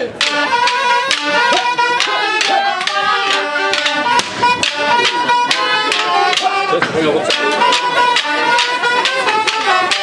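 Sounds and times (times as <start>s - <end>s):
high pipe melody: 0.0s - 10.0s
steady drum beat: 0.0s - 10.0s.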